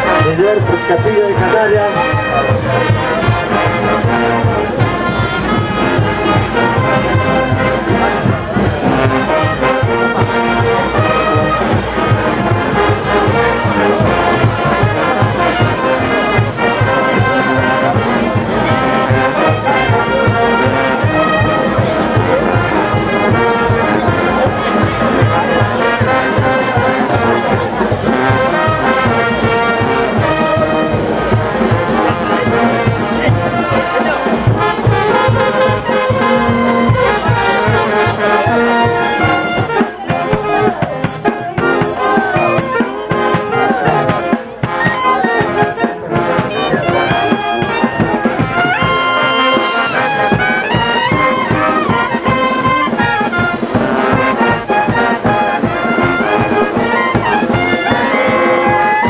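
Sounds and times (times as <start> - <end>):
brass band music: 0.0 - 59.0.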